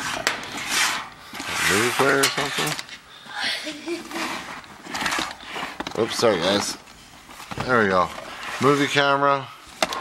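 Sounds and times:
people talking: 0:01.6 - 0:04.2, 0:05.9 - 0:06.8, 0:07.6 - 0:09.6.

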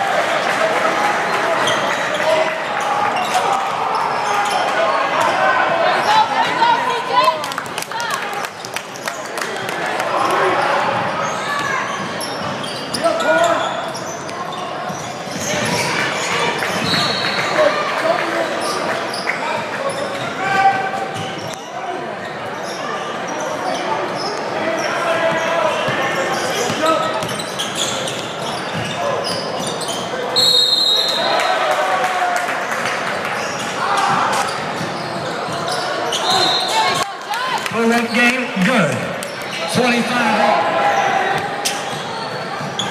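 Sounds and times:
indistinct shouts and talk: 0:00.0 - 0:28.0, 0:33.6 - 0:42.9
sneakers squeaking: 0:01.6 - 0:06.7, 0:10.5 - 0:17.7, 0:18.4 - 0:31.2, 0:33.1 - 0:37.1, 0:40.8 - 0:42.9.

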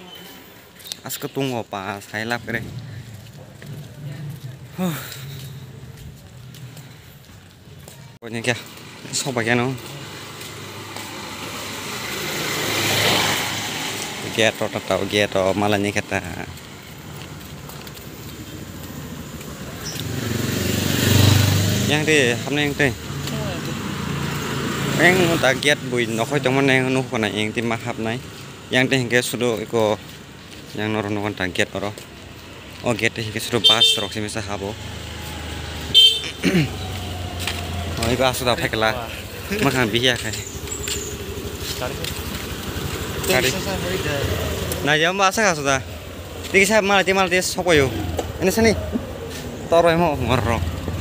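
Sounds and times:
vehicle engine and road noise: 0:00.0 - 0:51.0
short horn toot: 0:33.6 - 0:34.2, 0:35.9 - 0:36.8.

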